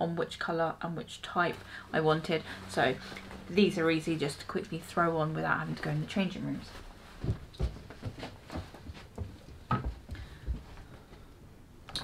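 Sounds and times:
clothing rustling: 5.6s - 11.1s
soft knocks: 7.2s - 10.7s.

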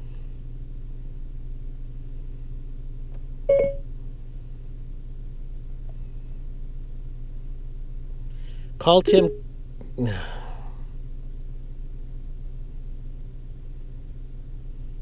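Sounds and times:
steady low hum: 0.0s - 15.0s
short electronic beep: 3.5s - 3.8s, 9.0s - 9.4s.

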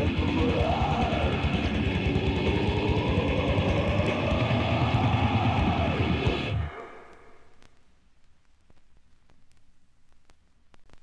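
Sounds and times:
rapid dense drumming: 0.0s - 6.7s
distorted guitars: 0.0s - 9.0s.

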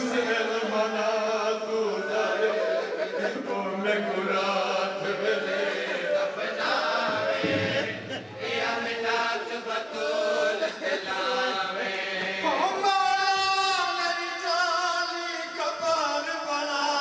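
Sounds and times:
men chanting a lament: 0.0s - 17.0s.

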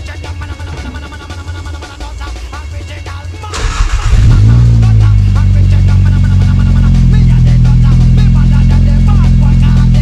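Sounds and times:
car engine starting and idling: 3.5s - 10.0s.

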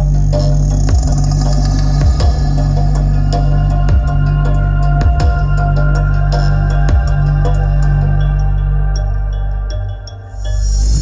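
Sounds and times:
electronic music with heavy bass: 0.0s - 11.0s.

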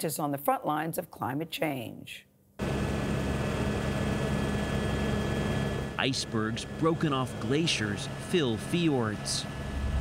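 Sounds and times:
helicopter engine and rotor drone: 2.6s - 10.0s.

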